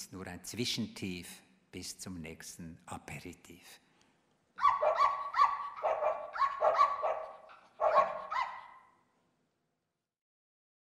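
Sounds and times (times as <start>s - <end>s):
dog yapping: 4.6s - 9.0s.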